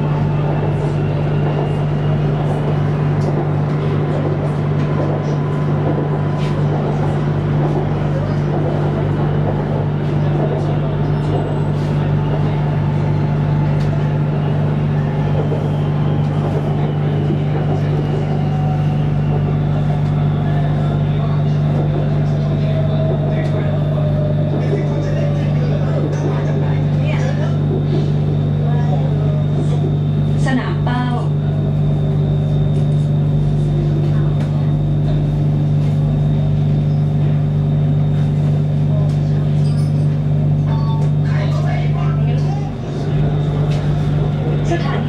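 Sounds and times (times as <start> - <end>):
train wheel and track rumble: 0.0 - 45.0.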